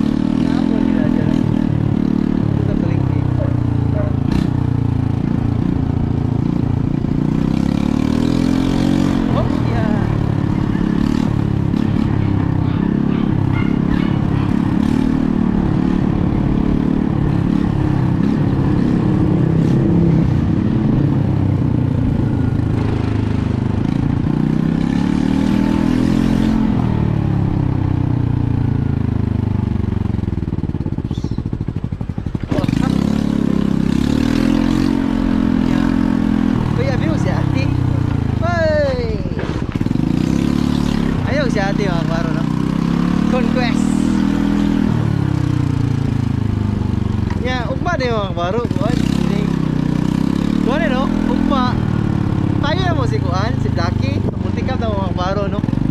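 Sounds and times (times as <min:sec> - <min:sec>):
motorcycle engine revving: 0:00.0 - 0:55.9.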